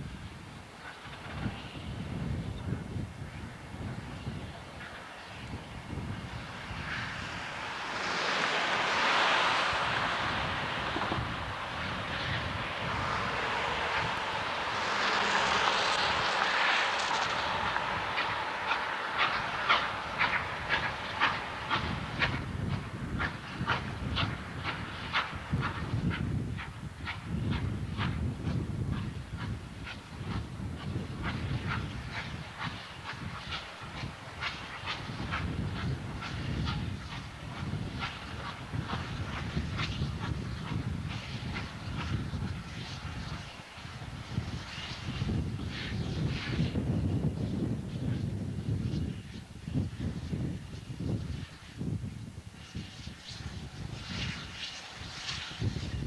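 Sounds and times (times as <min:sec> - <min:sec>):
low train rumble: 0:00.0 - 0:56.0
wheels clicking over rail joints: 0:06.8 - 0:26.8.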